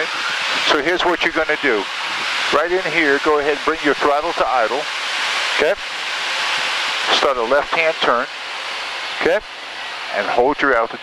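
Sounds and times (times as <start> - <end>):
jet engine and airflow in cockpit: 0.0 - 11.0.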